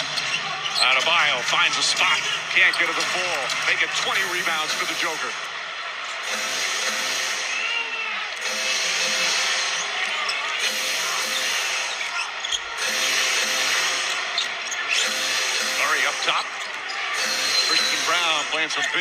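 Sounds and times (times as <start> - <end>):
crowd din: 0.0 - 19.0.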